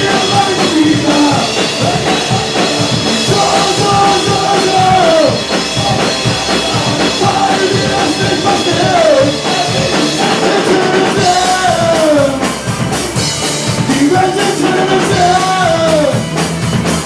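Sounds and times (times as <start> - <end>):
man singing: 0.0 - 12.6, 13.7 - 16.3
drum kit: 0.0 - 17.0
electric guitars: 0.0 - 17.0.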